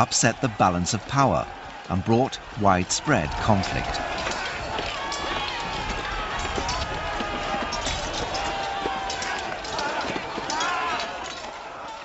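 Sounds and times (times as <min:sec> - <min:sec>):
men shouting and yelling: 0:00.0 - 0:12.0
weapons clashing on shields: 0:03.2 - 0:12.0.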